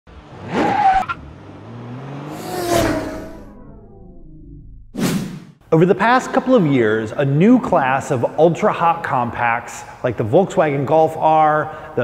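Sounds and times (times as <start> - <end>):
car passing by: 0.1 - 3.5
car engine revving: 0.1 - 5.0.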